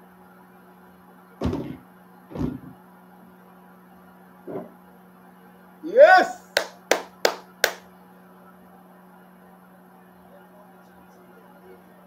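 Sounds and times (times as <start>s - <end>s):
dull thump on couch cushions: 1.4s - 2.7s.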